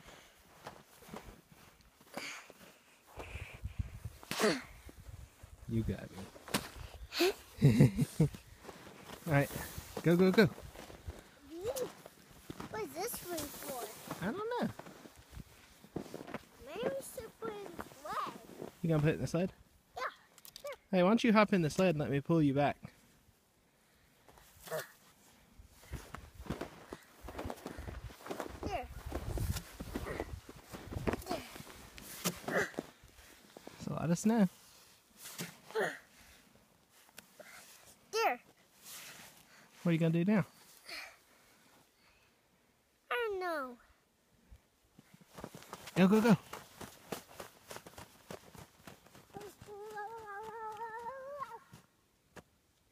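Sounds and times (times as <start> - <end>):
snow crunching and soft thuds: 0.0 - 20.2, 21.4 - 42.3, 43.7 - 52.9
child vocal sound falling in pitch: 49.4 - 51.7.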